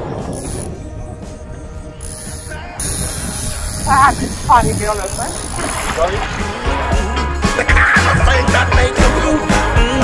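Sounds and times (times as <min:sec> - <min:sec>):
wind and boat rumble: 0:00.0 - 0:07.5
fishing reel ratcheting: 0:00.2 - 0:00.8, 0:02.0 - 0:06.0.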